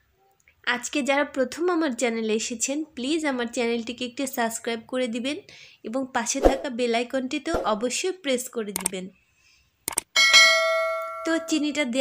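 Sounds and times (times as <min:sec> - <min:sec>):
mouse clicks: 0:08.8 - 0:09.0, 0:09.9 - 0:10.1
bright bell ding: 0:10.2 - 0:11.7.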